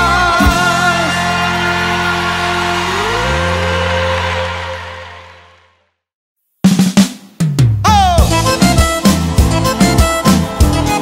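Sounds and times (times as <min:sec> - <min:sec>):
live band holding a chord: 0:00.0 - 0:05.4.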